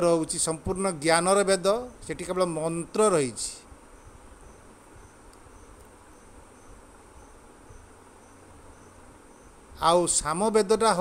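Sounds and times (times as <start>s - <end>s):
insect chirping: 0.0s - 11.0s
steady high hiss: 0.0s - 11.0s.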